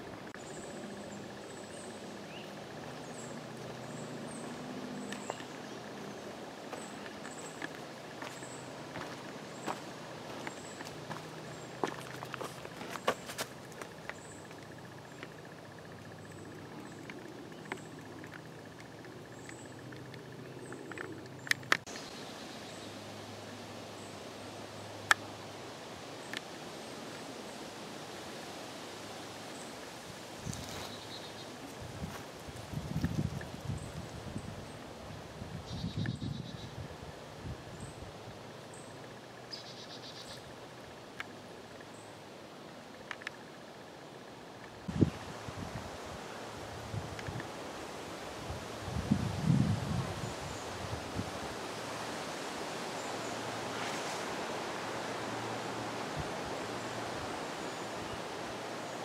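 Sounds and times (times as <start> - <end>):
breeze and rustling leaves: 0.0 - 59.0.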